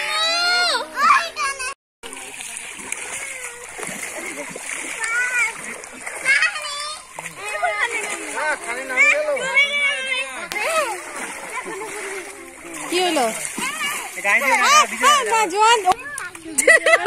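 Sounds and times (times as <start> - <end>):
water splashing and sloshing: 0.0 - 17.0
children calling out: 3.0 - 4.0, 4.8 - 16.5.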